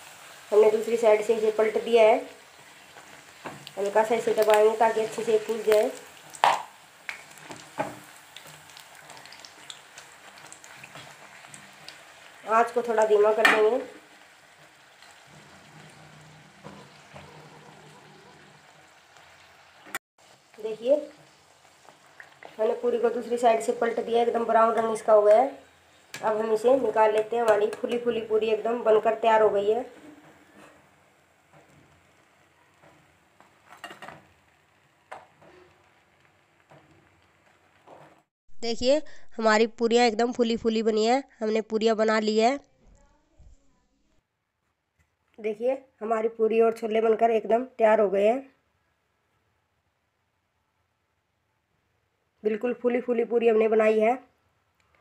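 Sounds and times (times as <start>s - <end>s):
bread sizzling in hot oil: 0.0s - 38.3s
sharp frying sounds: 0.0s - 40.4s.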